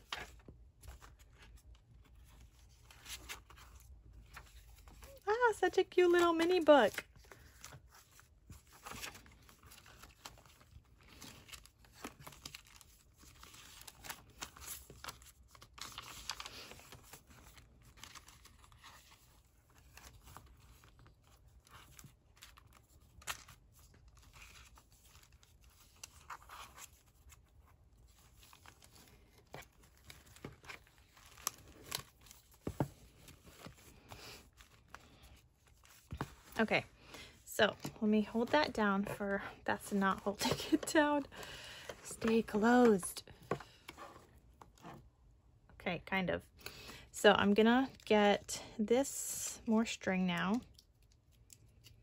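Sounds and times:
paper rustling and crinkling: 0:00.0 - 0:39.4.

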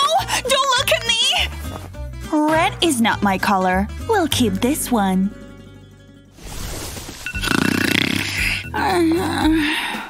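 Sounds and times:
background music: 0:00.0 - 0:10.0
person snoring: 0:07.4 - 0:08.8.

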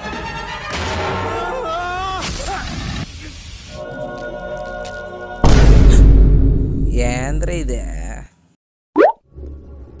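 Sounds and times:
music: 0:00.0 - 0:01.7, 0:03.7 - 0:05.6
rising plop pop: 0:09.0 - 0:09.2.

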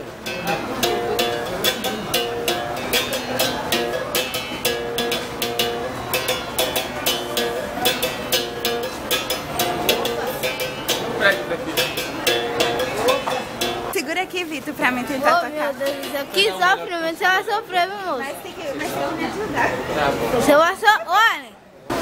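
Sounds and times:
berimbau playing: 0:00.0 - 0:17.8.

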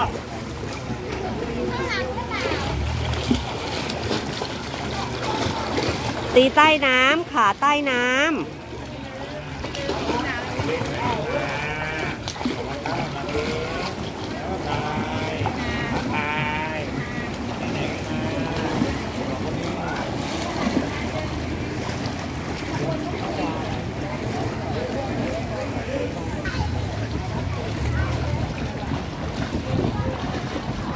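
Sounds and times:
water splashing and churning: 0:00.0 - 0:30.9.

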